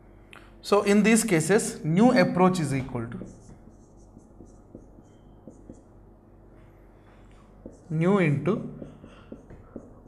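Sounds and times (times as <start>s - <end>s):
marker tapping on whiteboard: 2.8s - 5.9s, 7.6s - 7.9s, 8.5s - 10.0s
marker squeaking on whiteboard: 3.2s - 6.0s, 7.2s - 10.0s.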